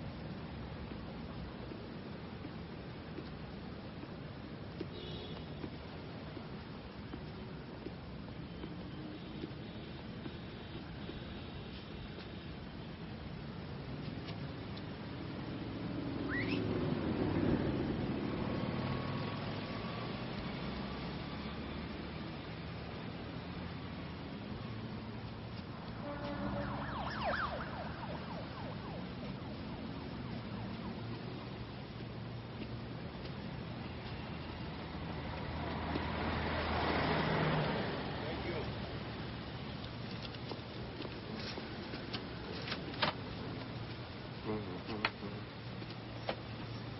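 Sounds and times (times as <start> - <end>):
traffic hum: 0.0 - 46.9
passing vehicle rumble: 15.0 - 33.0, 33.6 - 40.1
short rising chirp: 16.2 - 16.7.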